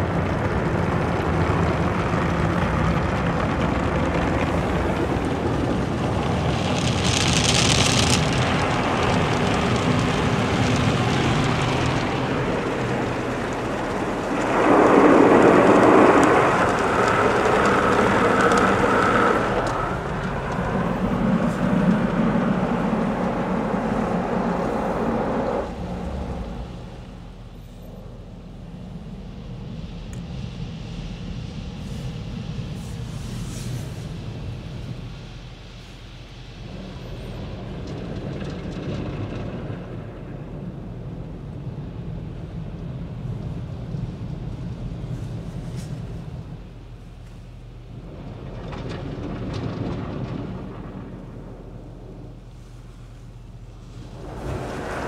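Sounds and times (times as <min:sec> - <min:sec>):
car wash water spraying: 0:00.0 - 0:55.0
cloth strips washing over car: 0:00.9 - 0:27.0.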